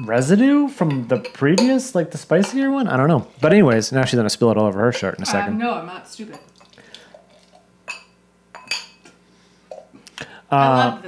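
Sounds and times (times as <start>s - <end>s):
glasses clinking: 0.0s - 1.8s, 7.8s - 9.9s
beer pouring: 6.4s - 8.2s.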